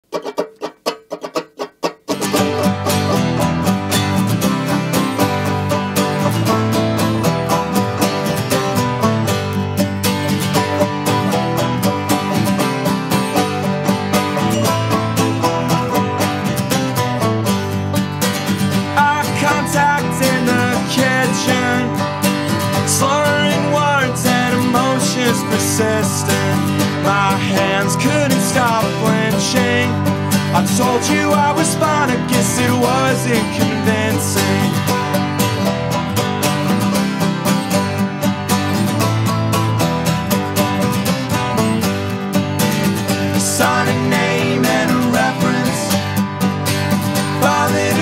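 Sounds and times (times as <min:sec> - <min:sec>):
plucked guitar: 0:00.0 - 0:48.0
steady bass: 0:02.3 - 0:48.0.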